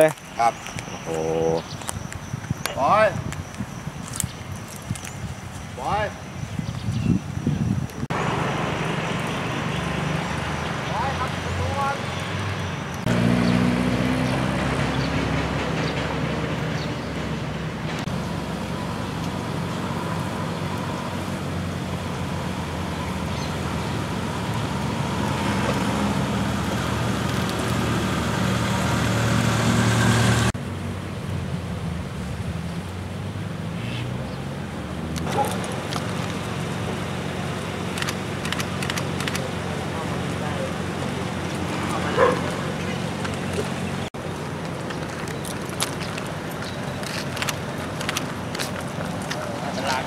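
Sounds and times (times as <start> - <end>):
outdoor traffic noise: 0.0 - 50.0
engine running with low hum: 13.0 - 50.0.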